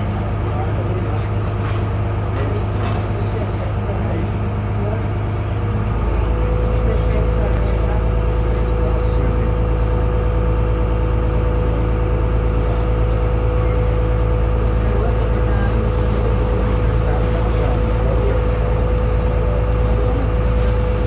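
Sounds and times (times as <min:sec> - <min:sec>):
boat engine droning: 0:00.0 - 0:21.0.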